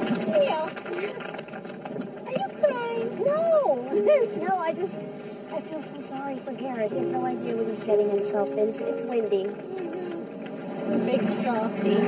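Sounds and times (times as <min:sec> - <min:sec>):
people chattering and exclaiming: 0:02.2 - 0:12.0.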